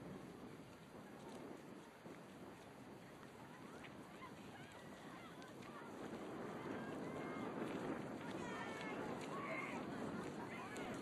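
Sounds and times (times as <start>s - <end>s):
faint low background murmur: 0.0s - 11.0s.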